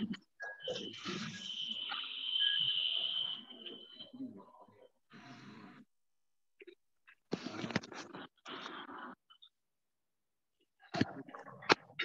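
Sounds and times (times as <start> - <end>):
high-pitched whine: 0.0 - 4.9.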